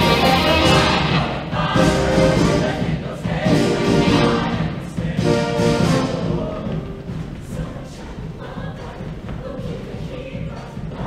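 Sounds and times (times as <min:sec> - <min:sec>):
live band accompanying: 0:00.0 - 0:02.7
choir singing in chorus: 0:00.0 - 0:11.0.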